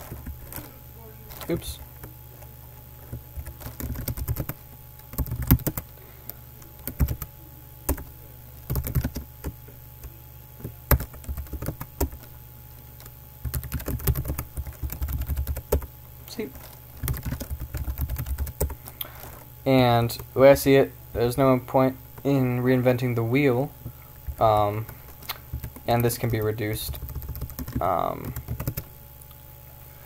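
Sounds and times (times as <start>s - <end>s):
steady low hum: 0.0s - 30.0s
typing on keyboard: 3.1s - 5.9s, 6.8s - 7.3s, 7.9s - 8.1s, 8.7s - 9.5s, 10.6s - 12.3s, 13.0s - 15.9s, 17.0s - 18.8s, 24.3s - 28.9s.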